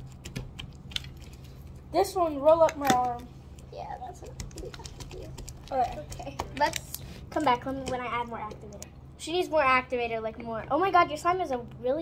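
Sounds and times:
slime clicking and squelching: 0:00.0 - 0:09.0.

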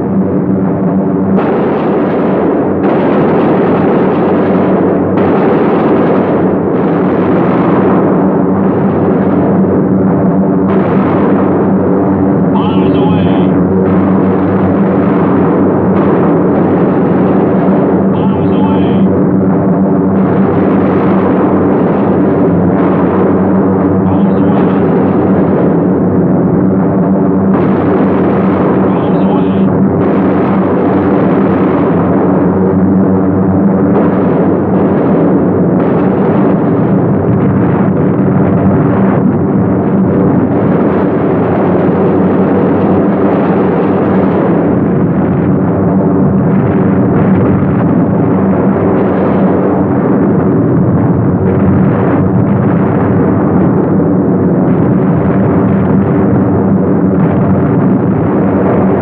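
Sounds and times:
propeller plane engines droning: 0:11.4 - 0:20.6, 0:21.3 - 0:30.0.

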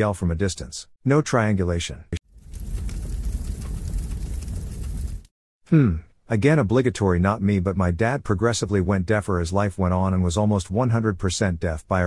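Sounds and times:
steady rumbling noise: 0:02.3 - 0:05.3.

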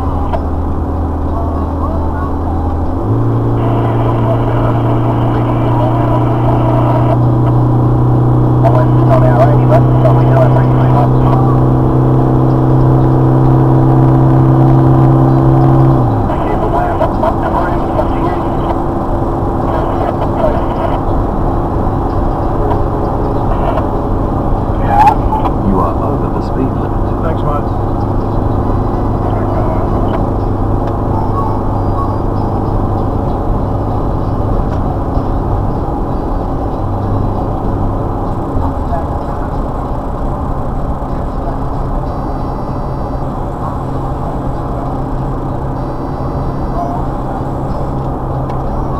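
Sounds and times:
vehicle engine and tyre drone: 0:00.0 - 0:48.9.

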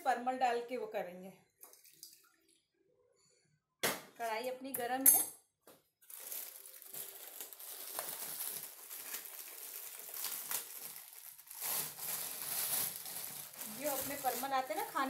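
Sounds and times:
plastic snack packet crinkling: 0:06.0 - 0:15.0.

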